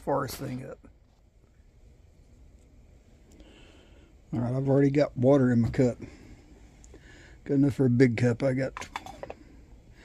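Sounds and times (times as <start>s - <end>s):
faint low hum: 0.0s - 10.0s.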